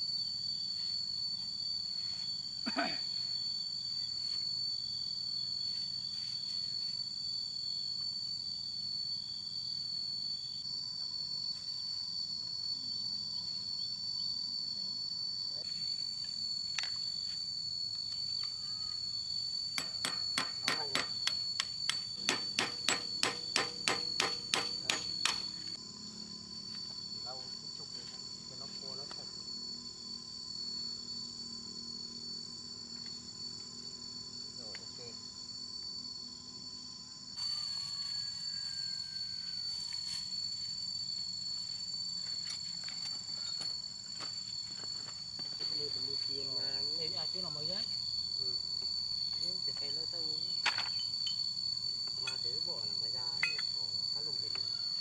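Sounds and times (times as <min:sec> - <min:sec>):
insects buzzing: 0:00.0 - 0:55.0
hammer blows ringing on metal: 0:19.8 - 0:25.5.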